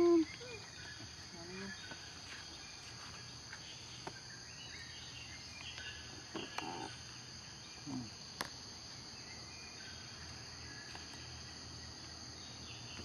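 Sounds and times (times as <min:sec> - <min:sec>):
insects droning: 0:00.0 - 0:13.0.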